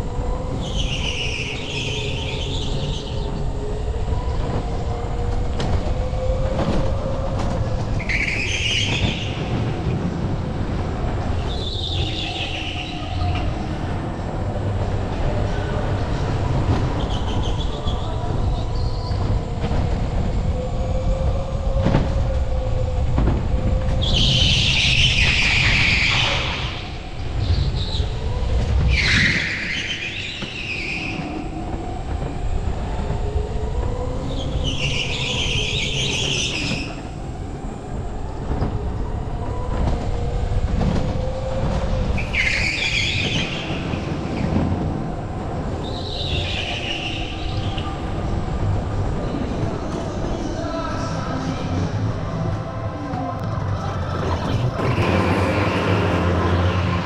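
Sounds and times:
rumble of tyres and wind: 0.0s - 57.0s
high-pitched tyre squeal: 28.9s - 31.2s
electric go-kart motor whine: 54.8s - 57.0s.

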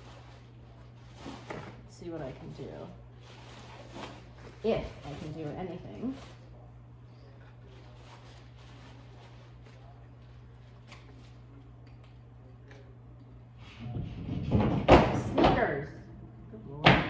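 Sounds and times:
low hum: 6.2s - 17.0s
clattering and thuds: 13.8s - 15.7s.

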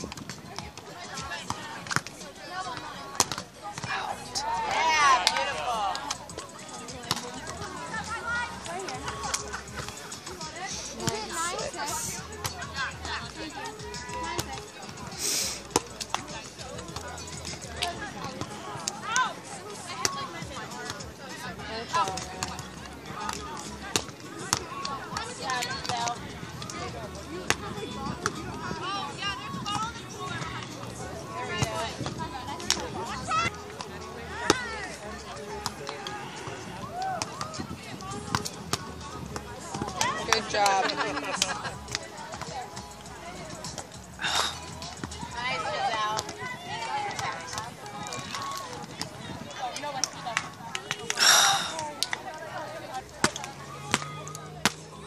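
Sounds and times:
voices in background: 0.0s - 55.0s
hand slapping volleyball: 3.1s - 4.0s, 39.7s - 42.5s, 49.7s - 51.2s, 53.2s - 54.8s
volleyball smacks by hands: 3.2s - 3.9s, 53.2s - 54.8s.

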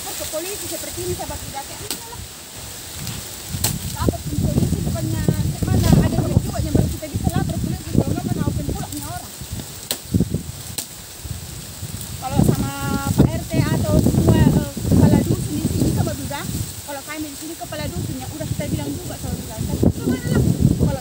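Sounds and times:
woman talking: 0.0s - 2.3s, 3.9s - 9.4s, 12.2s - 21.0s
dry palm fronds rustling: 0.0s - 21.0s.

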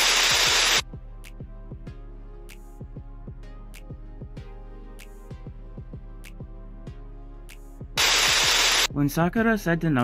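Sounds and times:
loud white-noise static burst: 0.0s - 0.8s, 8.0s - 8.9s
quiet music with falling notes: 0.8s - 8.0s.

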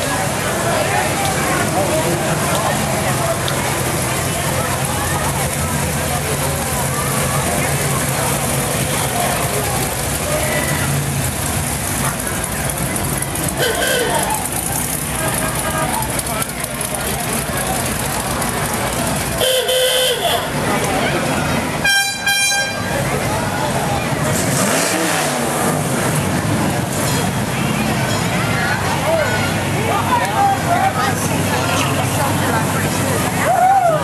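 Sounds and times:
crowd chatter: 0.0s - 34.0s
car horn honks: 13.6s - 14.3s, 19.4s - 20.5s, 21.8s - 22.9s
car engines cruising past: 22.9s - 34.0s.

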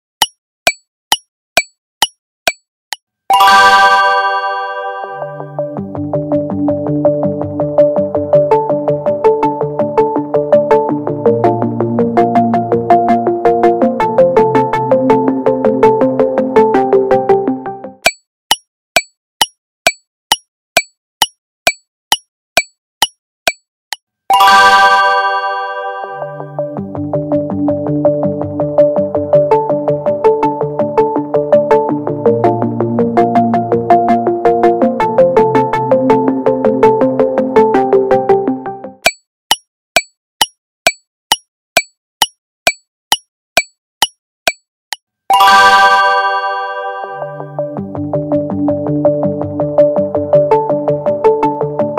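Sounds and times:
clock-like timer ticks: 0.2s - 3.0s, 18.0s - 24.0s, 39.0s - 45.0s
timer ticking: 39.0s - 44.6s.

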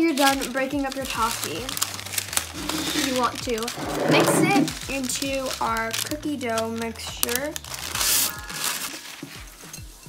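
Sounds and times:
parchment paper crinkling: 0.0s - 9.4s
light background music: 0.0s - 10.0s.

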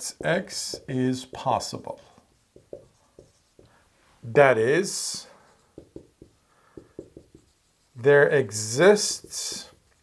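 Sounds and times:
marker writing on whiteboard: 0.0s - 3.8s, 4.6s - 10.0s.

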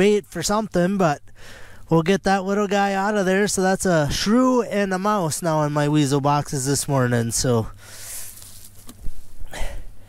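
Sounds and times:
short rustle: 7.9s - 9.5s
camera handling noise: 8.3s - 9.2s.

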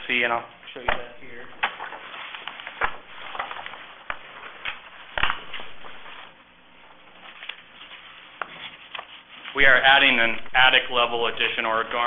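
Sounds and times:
paper shuffling and knocks: 0.8s - 10.4s.

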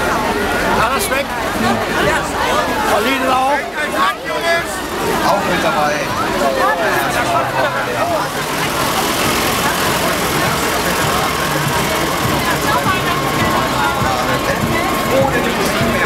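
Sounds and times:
crowd chatter: 0.0s - 16.0s
tractor diesel engine running: 0.0s - 16.0s.

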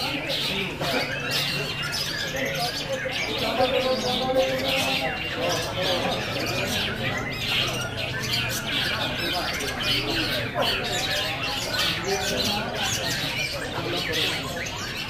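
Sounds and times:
bird singing harsh squawks: 0.0s - 15.0s
other birds: 0.0s - 15.0s
people talking: 0.0s - 15.0s.

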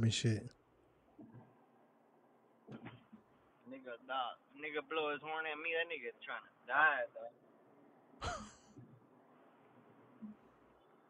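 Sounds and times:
man speaking: 0.0s - 0.5s, 3.7s - 7.3s
faint background hiss: 0.0s - 11.0s.

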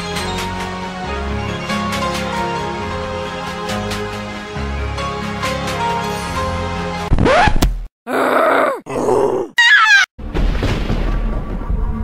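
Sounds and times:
person groaning: 8.1s - 9.6s.

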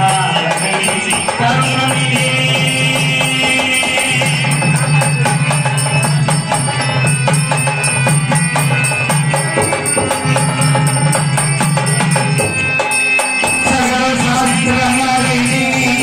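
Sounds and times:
harmonium melody: 0.0s - 16.0s.

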